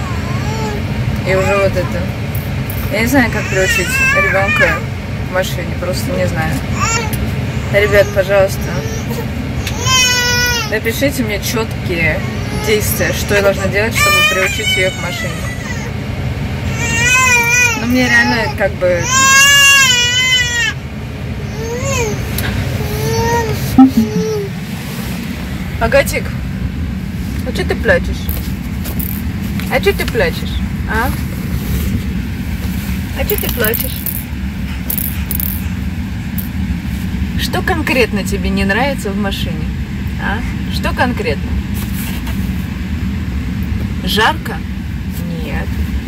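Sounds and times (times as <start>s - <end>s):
car road rumble: 0.0s - 38.8s
infant crying: 21.4s - 24.5s.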